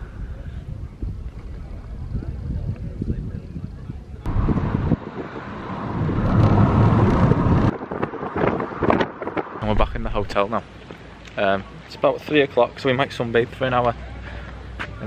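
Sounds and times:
wind buffeting microphone: 0.0 - 10.5
loud rushing noise: 4.3 - 10.3.

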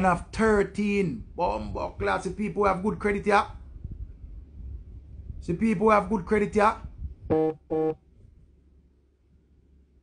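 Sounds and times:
faint low room hum: 0.0 - 10.0
short electronic beeps: 7.3 - 8.0.

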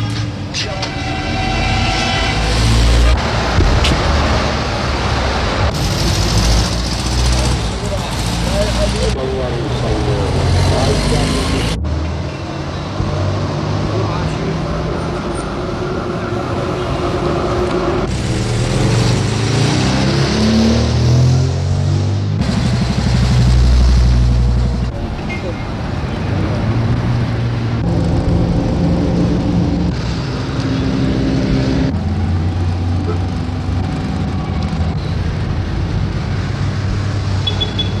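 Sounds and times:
traffic: 0.0 - 38.0
voices: 7.4 - 11.9.

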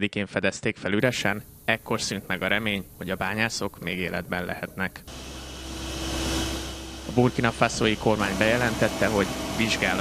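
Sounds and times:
machinery hum: 1.0 - 10.0
hissing noise: 5.0 - 10.0
mine machinery rumbling: 5.1 - 10.0.

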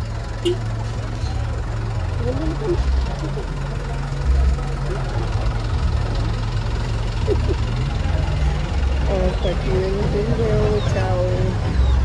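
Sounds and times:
truck engine idling: 0.0 - 12.0.

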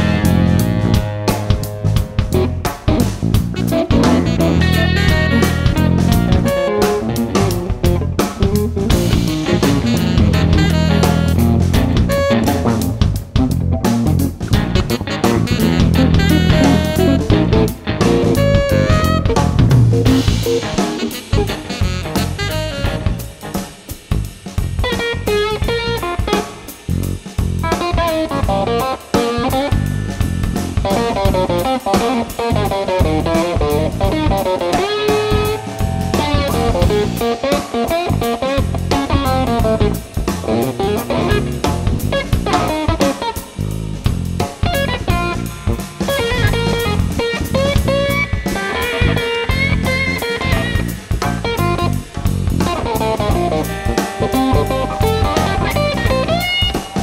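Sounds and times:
guitar melody: 0.0 - 24.0, 24.7 - 57.0
drum kit with snare and cymbals: 0.0 - 57.0
electric bass: 0.0 - 57.0.

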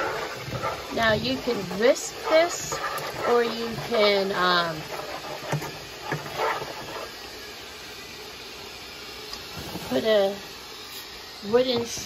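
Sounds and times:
gravy simmering in frying pan: 0.0 - 10.9.

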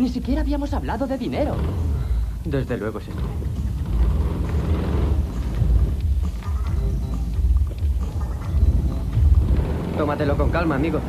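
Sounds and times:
car engine rumbling: 0.0 - 11.0.

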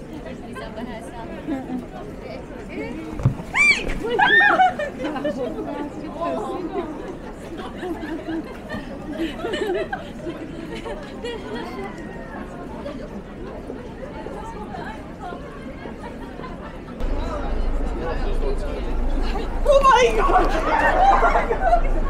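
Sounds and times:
chatter of passersby: 0.0 - 22.0.

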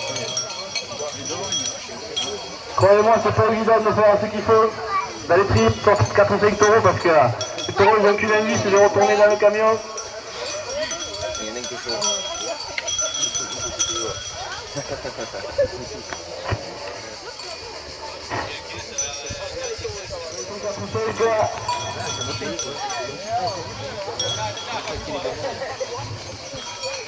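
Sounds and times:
bell ringing: 0.0 - 27.0
crowd talking and calling out: 0.0 - 27.0.

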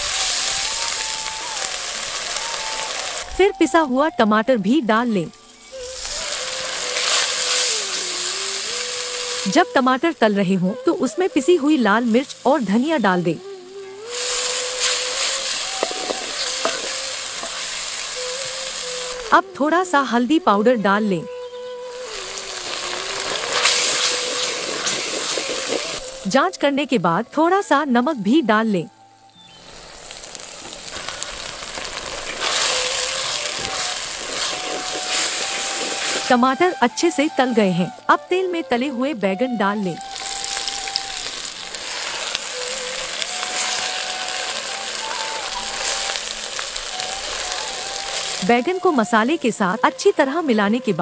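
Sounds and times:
tomato paste sizzling in oil: 0.0 - 3.9, 4.6 - 27.3, 29.4 - 38.8, 39.4 - 51.0.

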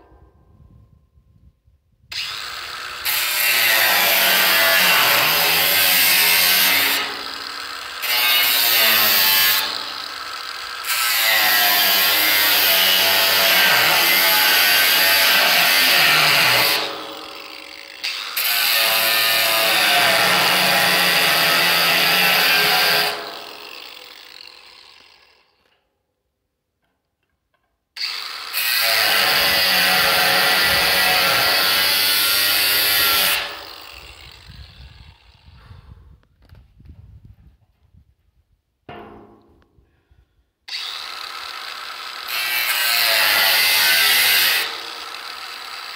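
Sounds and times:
angle grinder cutting metal: 2.1 - 25.7, 28.0 - 35.6, 40.7 - 45.9.

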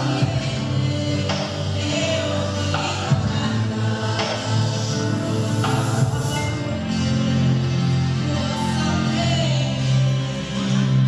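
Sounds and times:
woman singing into a microphone: 0.0 - 7.4, 8.2 - 11.0
musical accompaniment: 0.0 - 11.0.

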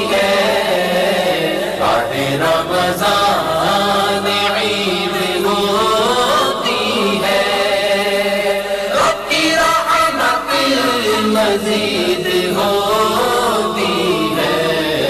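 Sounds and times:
voices chanting: 0.0 - 15.0.

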